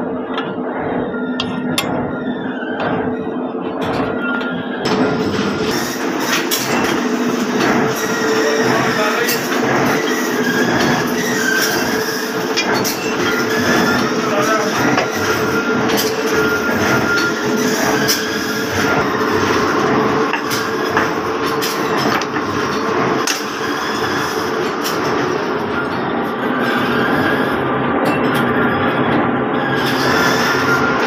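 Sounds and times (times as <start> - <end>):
machinery humming: 0.0 - 31.0.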